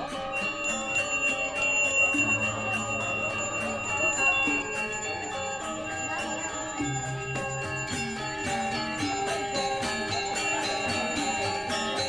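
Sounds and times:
high steady bell ring: 0.0 - 12.0
metallophones playing fast strokes: 0.0 - 12.0.

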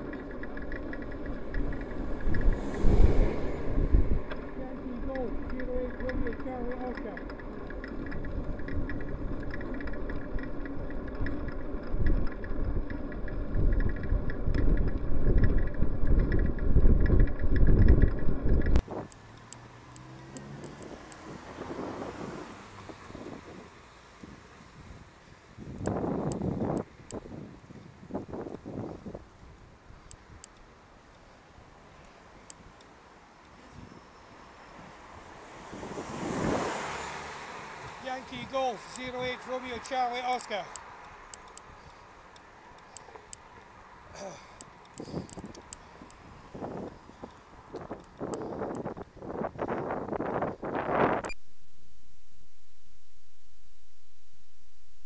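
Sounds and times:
car approaching from behind: 0.0 - 26.7, 30.6 - 51.3
traffic: 0.0 - 55.0
wind and road rumble: 0.0 - 55.0
car passing at speed: 0.4 - 5.5, 19.2 - 24.0, 34.0 - 38.2.

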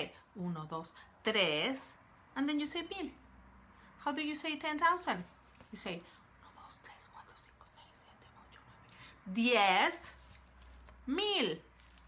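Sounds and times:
soft mouth and breath sounds: 6.0 - 9.2.

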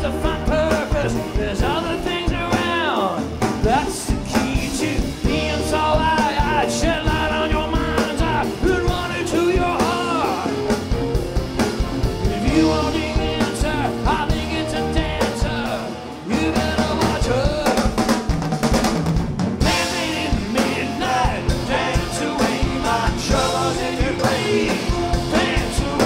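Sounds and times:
bass guitar: 0.0 - 26.0
drum kit: 0.0 - 26.0
keyboards: 0.0 - 26.0.

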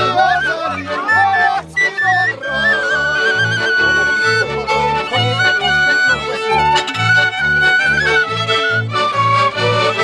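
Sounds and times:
accordion: 0.0 - 10.0
bowed double bass: 0.0 - 10.0
fiddles: 0.0 - 10.0
shepherd's pipe trilled melody: 0.0 - 10.0.

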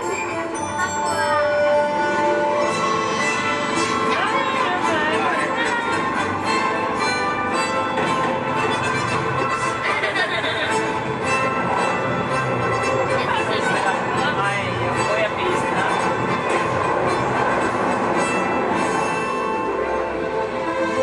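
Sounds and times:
indistinct voices: 0.0 - 19.4
orchestral soundtrack music: 0.0 - 21.0
rail carriage rumble: 0.0 - 21.0.

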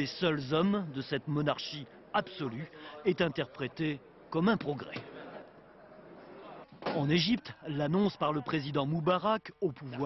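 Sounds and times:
man narrating: 0.0 - 5.0, 6.9 - 10.0
murmur of hall ambience: 0.0 - 10.0.

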